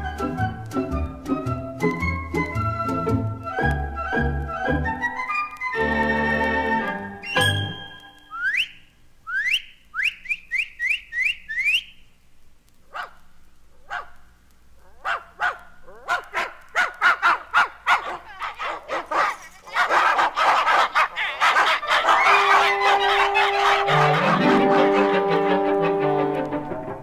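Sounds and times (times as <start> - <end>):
quick rising whistles: 7.2 - 12.0
dogs barking: 12.9 - 14.2, 14.8 - 25.4.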